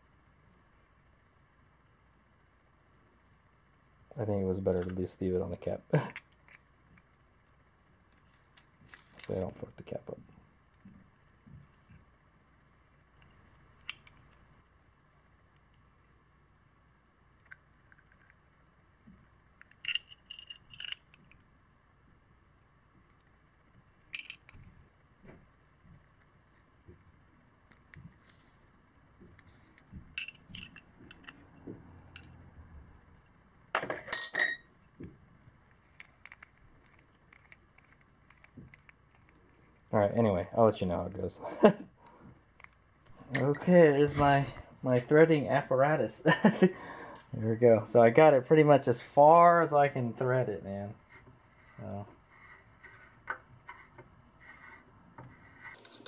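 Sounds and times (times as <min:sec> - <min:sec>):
metal tools clinking on workbench: 0:19.7 - 0:21.2, 0:24.0 - 0:24.6, 0:30.2 - 0:31.4, 0:33.8 - 0:34.7, 0:43.3 - 0:43.8.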